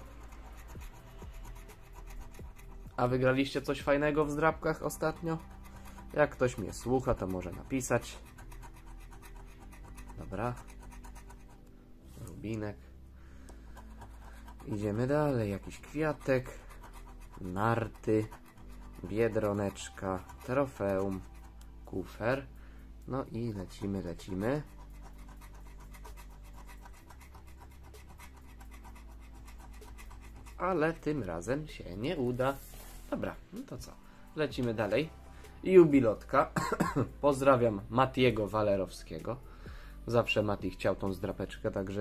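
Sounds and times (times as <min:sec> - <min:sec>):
spoon scraping scratch card: 0:00.0 - 0:12.6, 0:13.5 - 0:22.5, 0:23.3 - 0:35.2.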